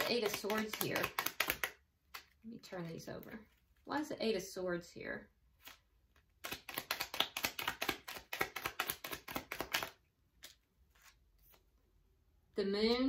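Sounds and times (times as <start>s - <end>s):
cards being shuffled: 0.0s - 3.8s, 5.5s - 11.8s.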